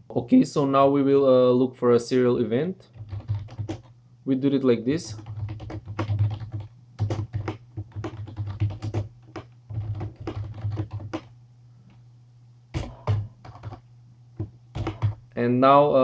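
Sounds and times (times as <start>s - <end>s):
computer keyboard typing: 2.9s - 3.9s, 5.1s - 11.3s, 12.8s - 13.8s, 14.4s - 15.2s.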